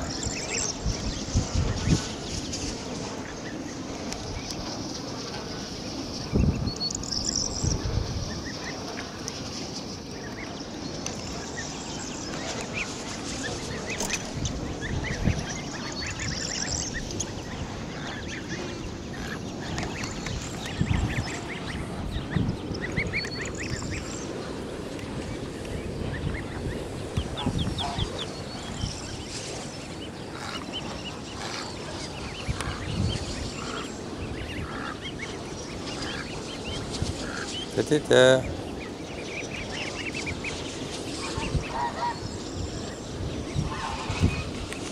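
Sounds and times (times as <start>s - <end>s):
ducklings peeping: 0.0s - 44.9s.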